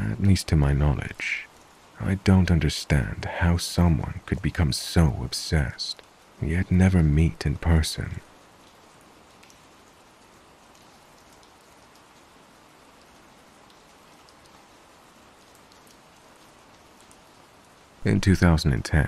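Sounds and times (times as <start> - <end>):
faint steady rain: 0.0 - 19.0.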